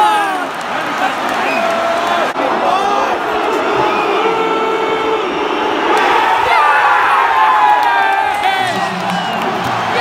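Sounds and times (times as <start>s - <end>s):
stadium crowd chanting: 0.0s - 10.0s.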